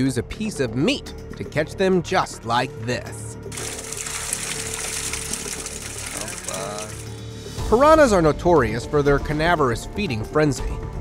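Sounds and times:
background music: 0.0 - 11.0
water splashing and churning: 3.5 - 7.2.

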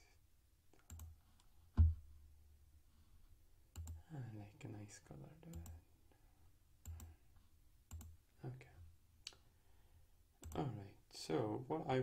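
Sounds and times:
computer mouse clicking: 0.8 - 1.5, 3.7 - 4.0, 6.8 - 7.1, 7.9 - 8.1
person speaking: 3.9 - 5.9, 10.4 - 12.0.

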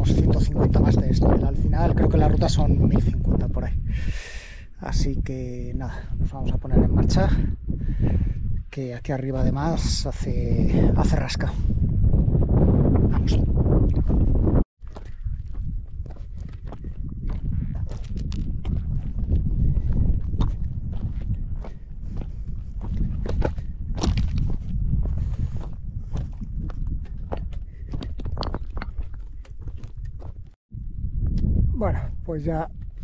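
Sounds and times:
wind on microphone: 0.0 - 33.0
footsteps on gravel: 14.8 - 30.6.

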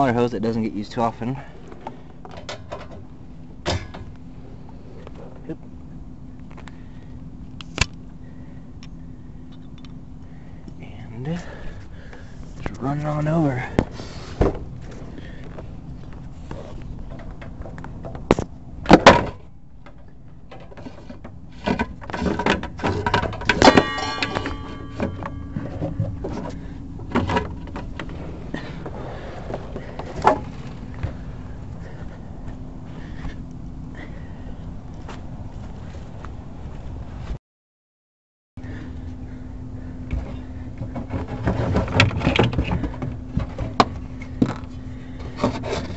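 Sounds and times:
faint low hum: 0.0 - 37.4, 38.6 - 45.9.

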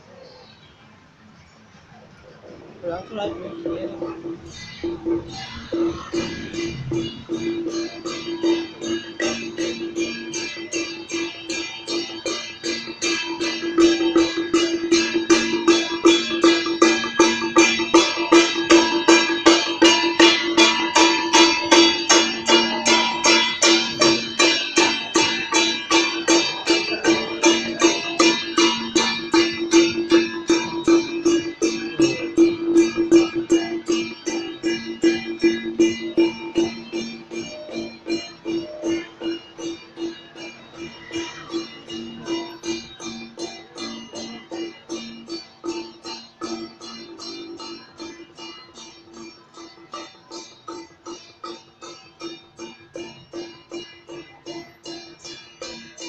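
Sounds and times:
steady held tone: 2.3 - 50.6
percussion beating fast rhythm: 2.7 - 56.0.

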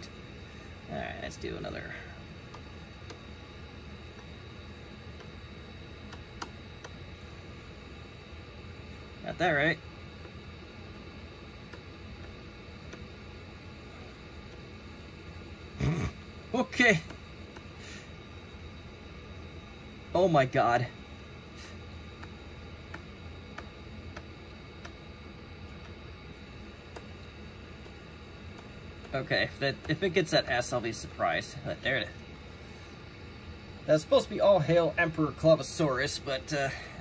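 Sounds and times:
faint low hum: 0.0 - 37.0.

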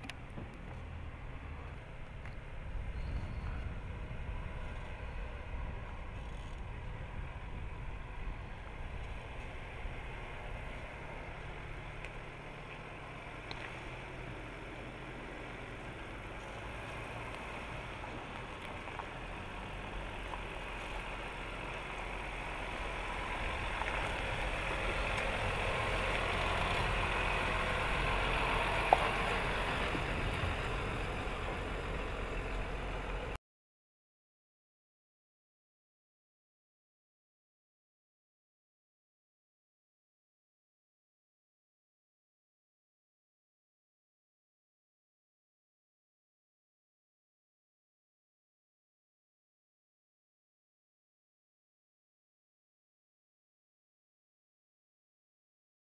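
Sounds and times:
vehicle engine running low: 0.0 - 33.4.

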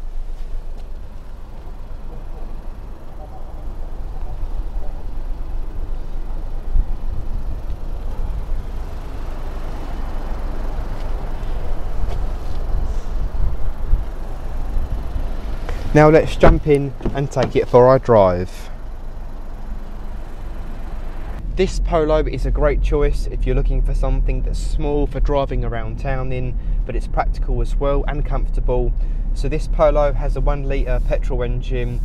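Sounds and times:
outdoor noise haze: 0.0 - 32.0
wind buffeting microphone: 11.5 - 15.6.

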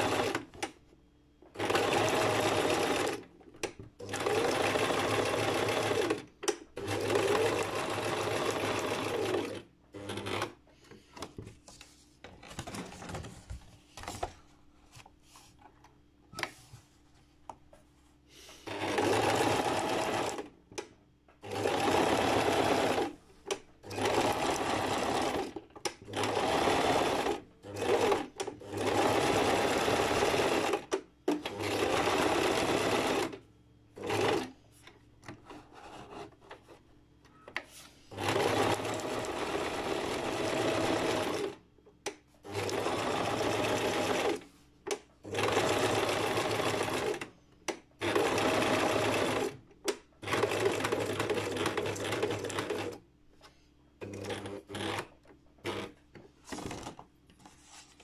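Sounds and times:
sewing machine stitching: 0.0 - 0.7, 1.5 - 3.3, 4.0 - 10.6, 18.7 - 20.5, 21.4 - 23.2, 23.8 - 33.4, 34.0 - 34.6, 38.1 - 41.6, 42.4 - 44.5, 45.2 - 47.3, 48.0 - 49.6, 50.2 - 53.0, 54.0 - 57.0.

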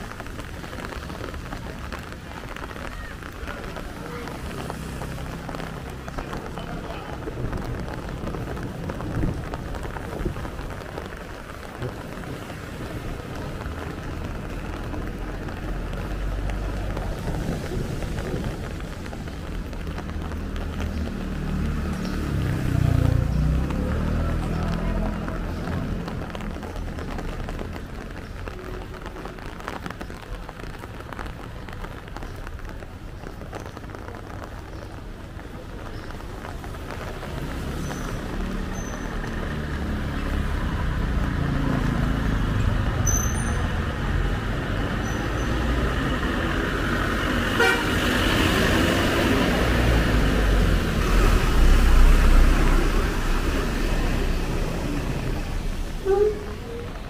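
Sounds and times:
traffic on a wet road: 0.0 - 57.0
bus engine passing: 36.4 - 57.0
vehicle horn tooting: 47.6 - 48.0.

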